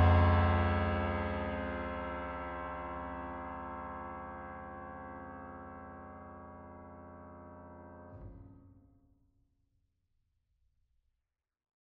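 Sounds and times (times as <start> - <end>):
soft piano chord ringing: 0.0 - 8.5.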